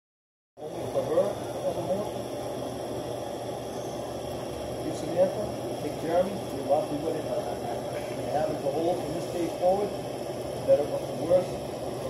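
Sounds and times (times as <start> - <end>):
microphone hiss: 0.6 - 12.0.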